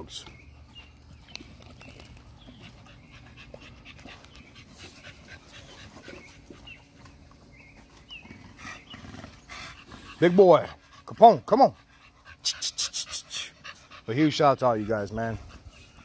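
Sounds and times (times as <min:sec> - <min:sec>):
dog panting: 0:00.4 - 0:16.0.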